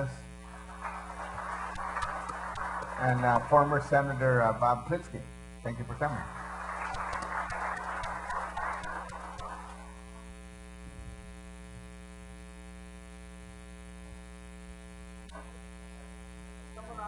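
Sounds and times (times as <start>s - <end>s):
people clapping: 0.0s - 4.4s, 6.0s - 10.1s
electrical hum and buzz: 0.0s - 17.0s.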